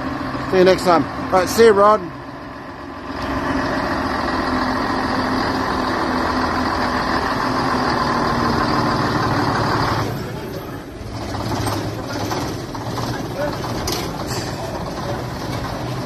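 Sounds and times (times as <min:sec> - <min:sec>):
diesel bus engine pulling away: 0:00.0 - 0:16.0.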